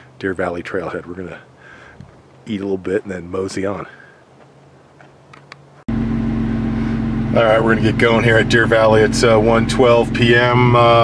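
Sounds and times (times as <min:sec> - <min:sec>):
car engine idling: 0:05.2 - 0:11.0.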